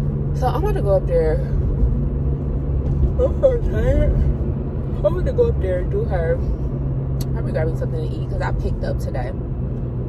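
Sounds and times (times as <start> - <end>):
road rumble inside car: 0.0 - 10.0.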